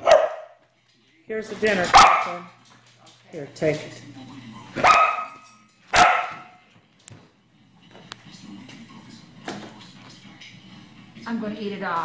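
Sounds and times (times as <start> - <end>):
dog barking: 0.0 - 0.6, 1.9 - 2.6, 4.8 - 6.6.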